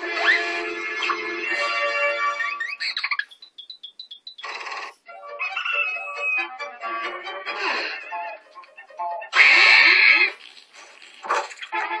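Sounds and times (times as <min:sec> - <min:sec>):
cartoon music notes: 0:00.0 - 0:04.4, 0:05.1 - 0:09.6.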